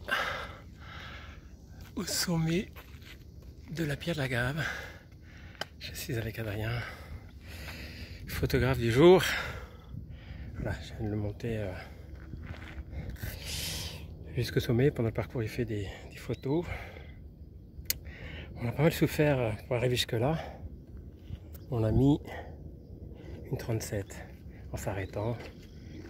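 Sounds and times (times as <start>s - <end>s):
heavy breath: 0.0s - 1.5s, 4.6s - 5.8s, 6.8s - 8.3s, 12.8s - 14.1s
faint outdoor hiss: 0.0s - 26.0s.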